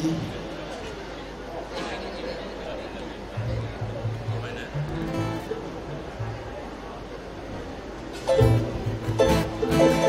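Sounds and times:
acoustic string ensemble playing: 3.5 - 7.0, 8.0 - 10.0.

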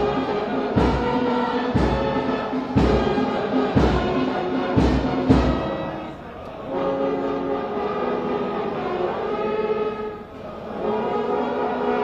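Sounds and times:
deep drum beat: 0.0 - 5.8
ceremonial music with chords: 0.0 - 12.0
singing: 0.0 - 12.0.

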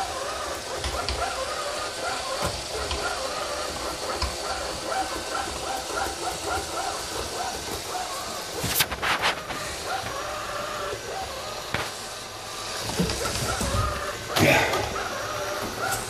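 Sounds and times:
robot vacuum cleaner whirring: 0.0 - 16.0.

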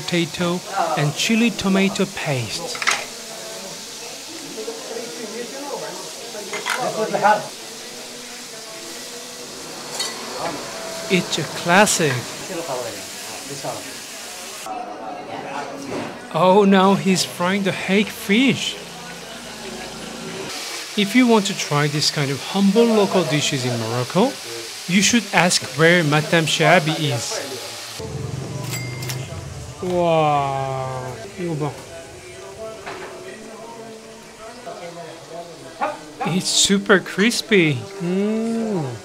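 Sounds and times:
fish deep-frying in hot oil: 0.0 - 14.7, 17.2 - 28.0, 31.4 - 39.0
faint background music: 0.0 - 39.0
faint voices: 26.2 - 36.5
falling vocal exclamation: 38.0 - 39.0.

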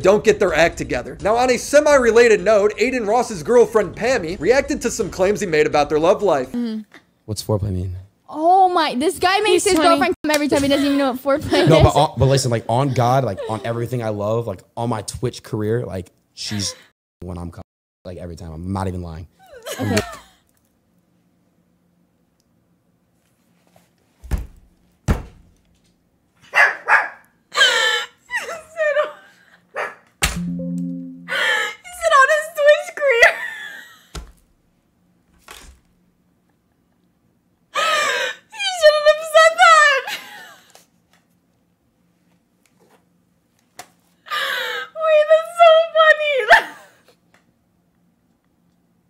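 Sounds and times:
woman shrieking: 44.3 - 46.9
woman laughing in shrieks: 46.4 - 47.0.

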